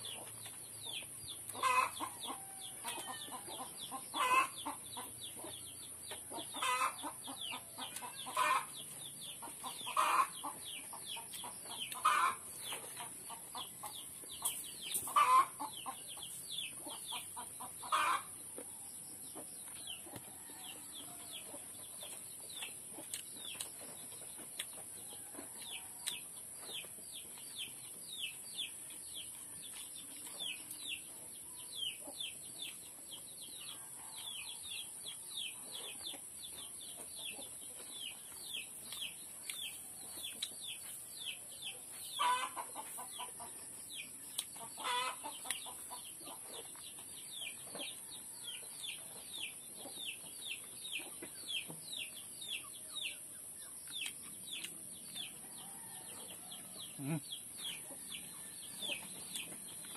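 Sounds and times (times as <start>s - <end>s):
chickens peeping: 0.0s - 59.9s.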